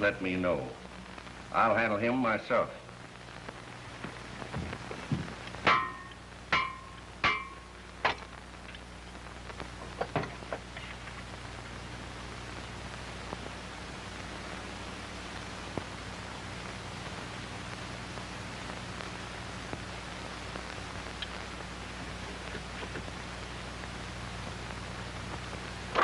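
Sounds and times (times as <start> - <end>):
film soundtrack hiss: 0.0 - 26.0.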